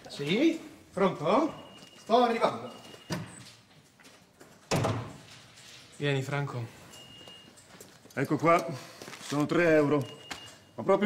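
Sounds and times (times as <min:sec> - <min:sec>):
door shutting thud: 0:04.7 - 0:05.2.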